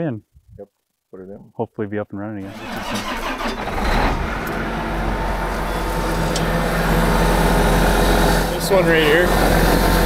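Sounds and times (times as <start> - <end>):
tractor diesel engine starting and idling: 2.4 - 10.0.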